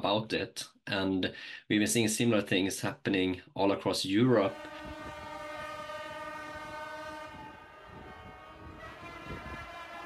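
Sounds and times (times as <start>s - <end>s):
many vehicle horns blaring: 4.5s - 10.0s.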